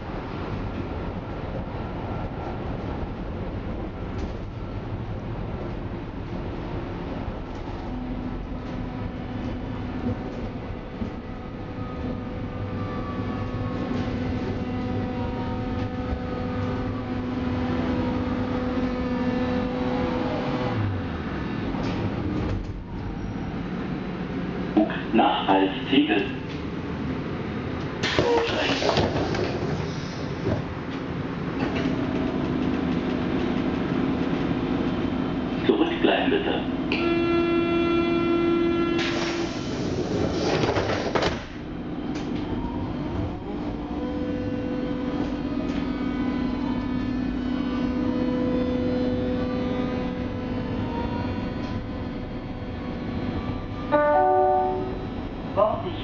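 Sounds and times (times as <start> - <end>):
train rumble and motor hum: 0.0 - 56.0.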